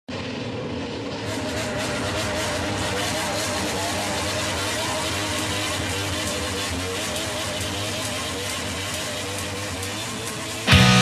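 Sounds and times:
motorcycle engine running: 0.1s - 11.0s.

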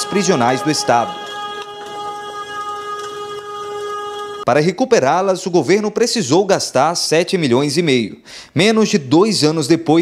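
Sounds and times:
steady pitched tone: 0.0s - 4.5s.

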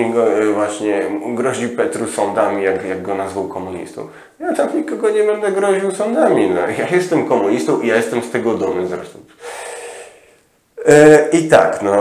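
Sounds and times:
man speaking: 0.0s - 9.9s, 10.8s - 12.0s
man breathing in: 9.3s - 10.5s.

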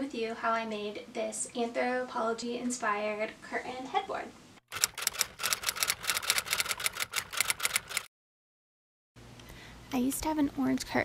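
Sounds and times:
typewriter key clacks: 4.7s - 8.1s.

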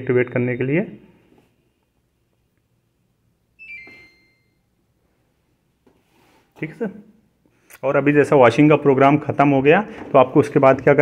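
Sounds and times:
washing machine electronic chime: 3.6s - 4.7s.

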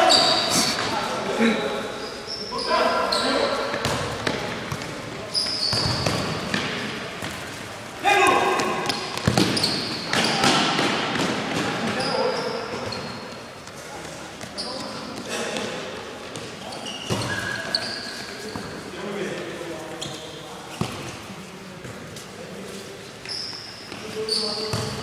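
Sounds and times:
ball kicked and bouncing: 8.6s - 11.7s.

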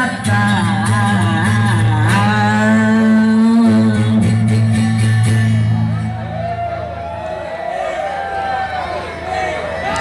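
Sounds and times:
man singing a long note: 0.0s - 6.0s
acoustic guitar: 0.0s - 7.1s
bass: 0.0s - 10.0s.

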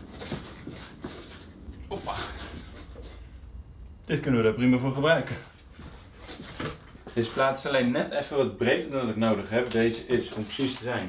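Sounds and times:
footsteps on workshop floor: 0.0s - 3.4s, 5.2s - 7.6s
soft knocks and shuffling: 0.0s - 3.6s, 5.2s - 7.8s.

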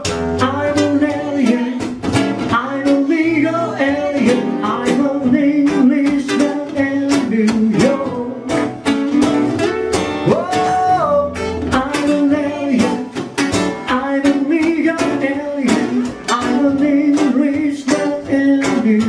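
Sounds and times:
acoustic guitars playing: 0.0s - 19.0s.

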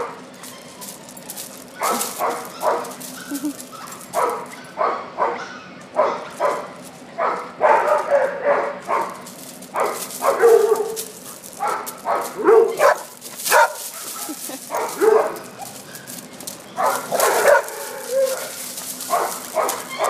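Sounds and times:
dogs barking and yipping: 0.0s - 20.0s.

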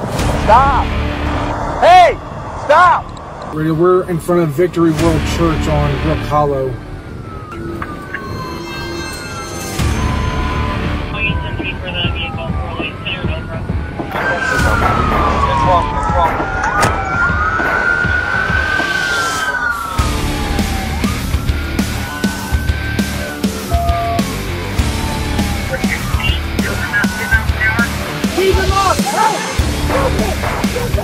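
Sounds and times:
low vehicle rumble: 0.0s - 28.9s
police siren wailing: 0.6s - 31.0s.

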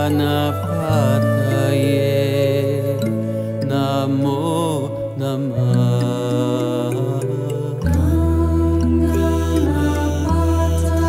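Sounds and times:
person chanting a mantra: 0.0s - 11.0s.

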